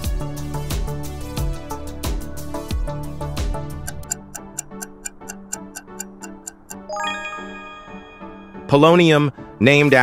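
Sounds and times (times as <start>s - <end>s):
background music: 0.0s - 10.0s
rapid clock-like ticks: 3.8s - 6.9s
bright ringing chime: 6.8s - 8.8s.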